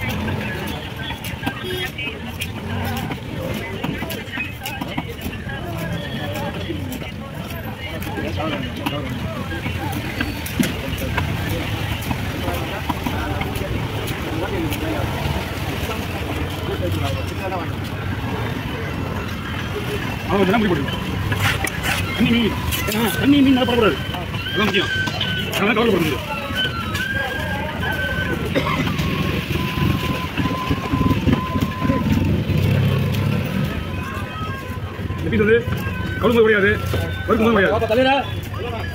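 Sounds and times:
background voices talking: 0:00.0 - 0:38.9
steady traffic-like noise: 0:00.0 - 0:38.9.

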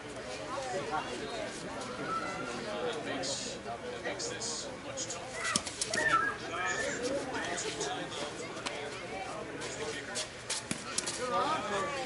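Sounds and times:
people talking in background: 0:00.0 - 0:12.0.

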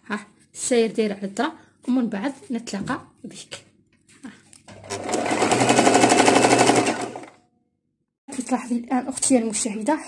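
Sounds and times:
sewing machine stitching: 0:04.7 - 0:07.4.

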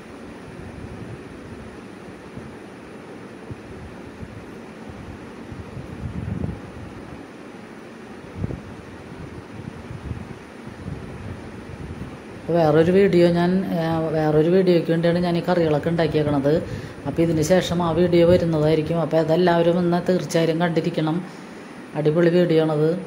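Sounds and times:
steady hiss: 0:00.0 - 0:23.0.

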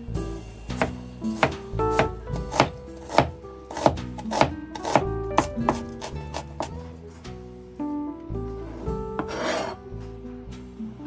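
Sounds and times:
knife scraping cutting board: 0:02.5 - 0:05.1, 0:08.7 - 0:09.8
soft acoustic guitar music: 0:04.6 - 0:11.0.

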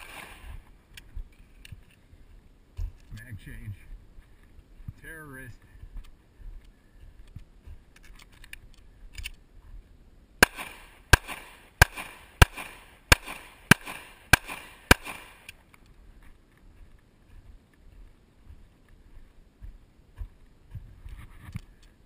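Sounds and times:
pistol shots: 0:00.0 - 0:00.5, 0:10.4 - 0:15.5.

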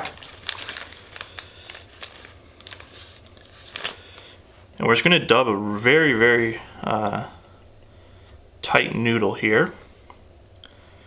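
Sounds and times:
plastic packet crinkling: 0:00.0 - 0:04.4.

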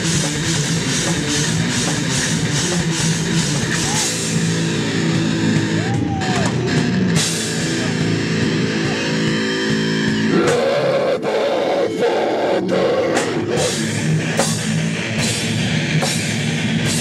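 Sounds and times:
heavy metal band playing: 0:00.0 - 0:17.0
harsh screamed vocal: 0:10.2 - 0:14.1.

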